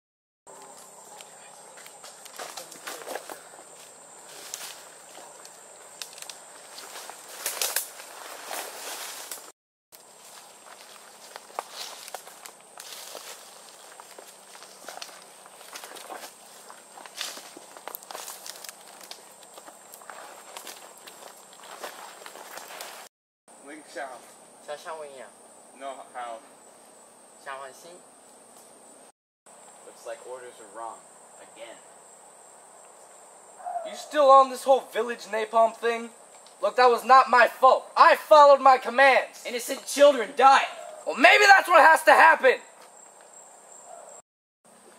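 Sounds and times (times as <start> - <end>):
twigs snapping: 0.6 - 3.3, 4.4 - 8.2, 8.8 - 9.5, 10.7 - 16.3, 17.0 - 22.9
footsteps through dry leaves: 1.7 - 5.5, 6.2 - 23.1.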